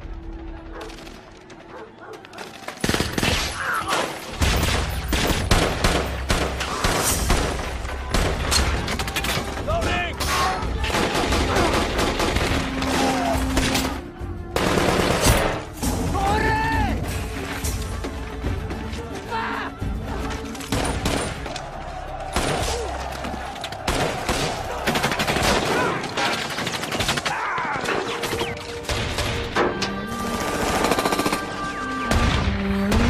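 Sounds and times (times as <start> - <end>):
heavy automatic gunfire: 14.6 - 15.4
men shouting: 19.0 - 26.5.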